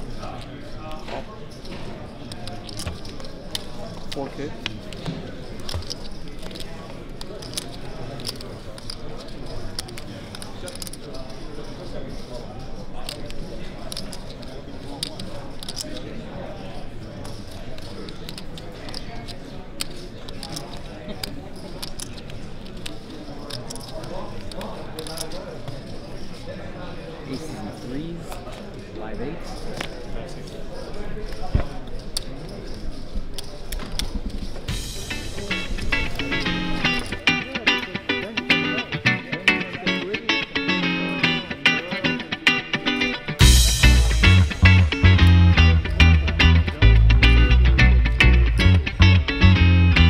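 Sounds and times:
murmur of many voices: 0.0 - 50.0
poker chips clicking: 2.3 - 11.4, 13.0 - 16.1, 17.2 - 25.4, 31.2 - 43.4.

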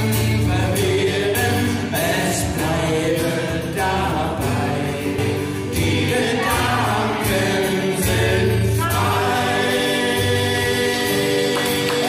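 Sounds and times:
acoustic guitar: 0.0 - 12.0
two men singing folk song: 0.0 - 12.0.

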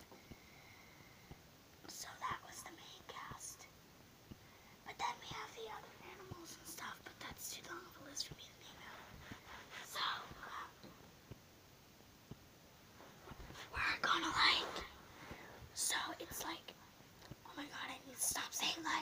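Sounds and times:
child whispering: 1.9 - 3.7, 4.8 - 9.1, 9.7 - 10.8, 13.6 - 15.0, 15.8 - 16.8, 17.4 - 19.0.

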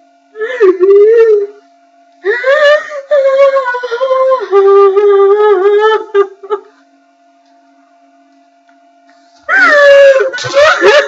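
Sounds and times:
faint steady hum: 0.0 - 11.0
high-pitched crying wail: 9.5 - 11.0
woman wailing in held notes: 9.5 - 11.0.

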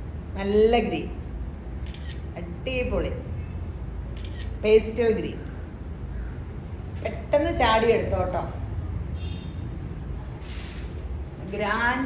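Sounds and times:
woman's voice: 0.4 - 1.2, 2.4 - 3.3, 4.6 - 5.5, 7.0 - 8.7, 11.4 - 12.0.

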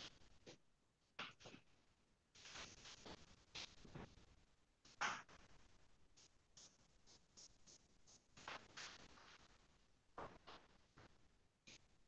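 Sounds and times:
paintbrush scratching on paper: 6.2 - 9.5.

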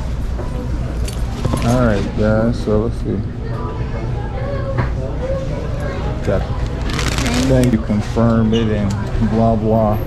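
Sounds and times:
restaurant dining room hum: 0.0 - 10.0.

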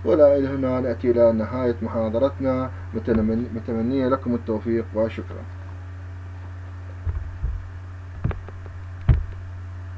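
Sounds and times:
low electrical hum: 0.0 - 9.9
soft low thumps: 2.9 - 3.6, 6.9 - 9.5.

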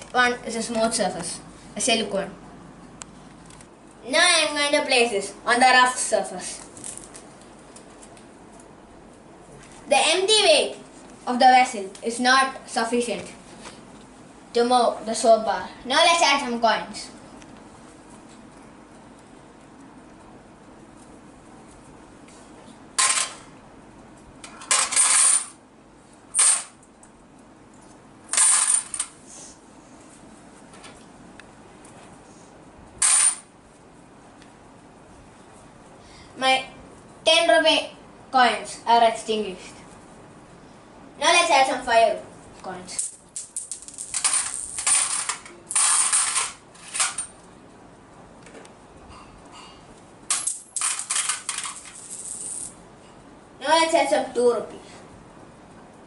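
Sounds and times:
coins clinking into vessel: 24.7 - 25.6, 26.4 - 26.7, 28.3 - 29.1, 33.0 - 33.4, 43.0 - 47.3, 50.3 - 52.7.

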